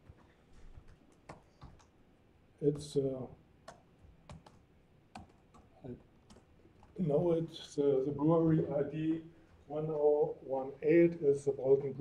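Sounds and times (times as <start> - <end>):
laptop keyboard keystrokes: 0.0 - 2.0, 3.6 - 7.0.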